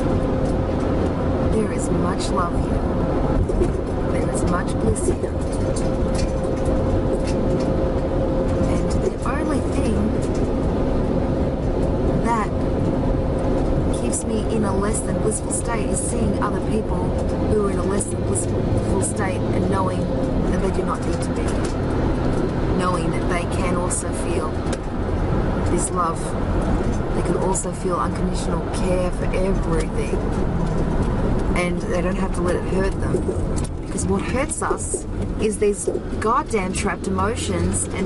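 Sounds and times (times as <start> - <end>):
faint steady hum: 0.0 - 38.0
road and engine rumble: 0.0 - 38.0.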